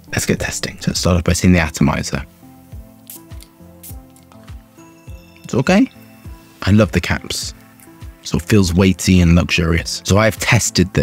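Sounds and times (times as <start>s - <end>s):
background music with steady beat: 0.0s - 11.0s
perfume atomizer spritz hiss: 2.2s - 5.2s, 7.2s - 8.4s.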